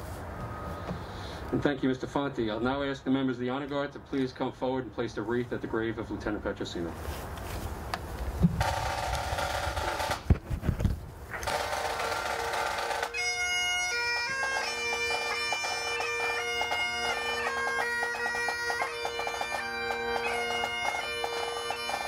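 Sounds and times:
bagpipe chanter melody: 11.4s - 22.0s
bagpipe drone: 11.4s - 22.0s.

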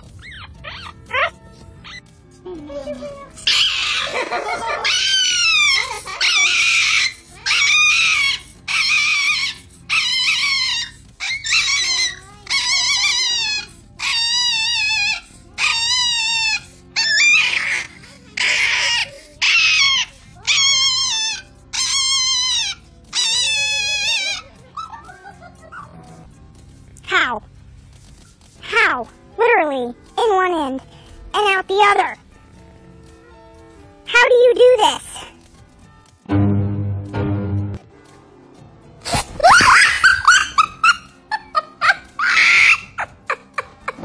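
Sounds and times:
small dog screaming: 3.4s - 4.2s, 4.8s - 24.9s, 42.2s - 43.0s.

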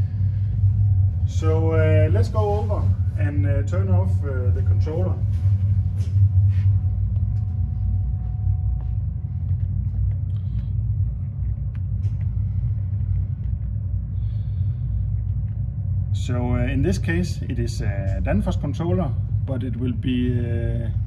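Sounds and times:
refrigeration compressors humming: 0.0s - 21.0s.

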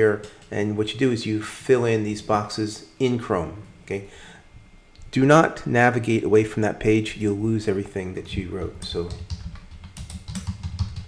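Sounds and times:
computer keyboard typing: 8.2s - 11.0s.

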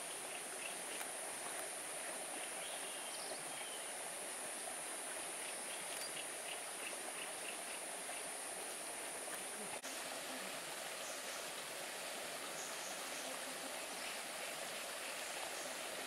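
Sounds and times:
running water hiss: 0.0s - 16.0s.

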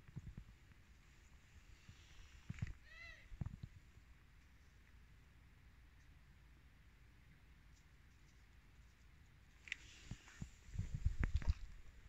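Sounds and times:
cat meowing faintly: 2.8s - 3.4s.

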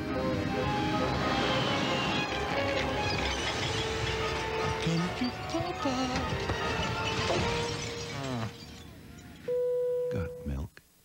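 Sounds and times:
crash and clatter: 0.8s - 9.4s.

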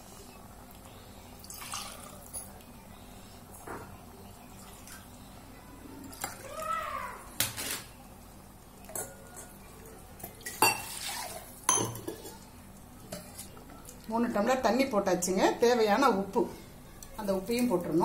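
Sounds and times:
metal ladle clinking on a pot: 11.7s - 12.3s.

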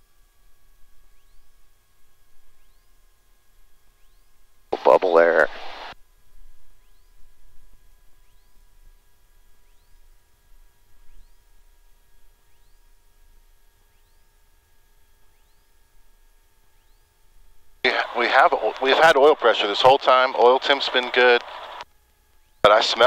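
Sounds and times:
faint aircraft engine idling: 0.0s - 23.0s
thin steady whining tones: 0.0s - 23.0s.

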